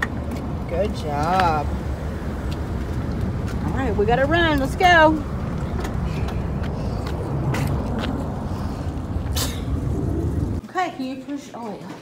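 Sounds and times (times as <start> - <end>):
low outdoor rumble: 0.0 - 10.6.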